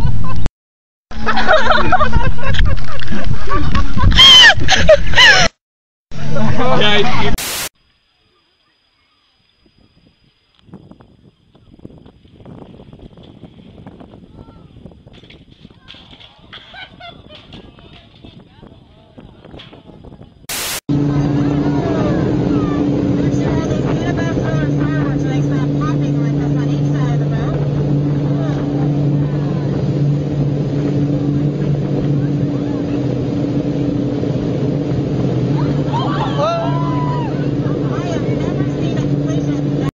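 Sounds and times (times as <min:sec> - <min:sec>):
wind: 0:00.0 - 0:00.5, 0:01.1 - 0:39.9
motorboat engine droning: 0:06.2 - 0:07.4, 0:20.5 - 0:39.9
short burst of noise: 0:07.3 - 0:07.8, 0:20.5 - 0:20.8
water rushing: 0:20.5 - 0:39.9
voices: 0:21.0 - 0:34.0, 0:35.4 - 0:39.9.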